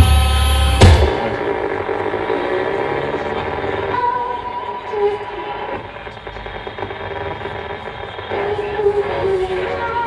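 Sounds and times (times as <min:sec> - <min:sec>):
droning amplifier feedback: 0:00.0 - 0:10.0.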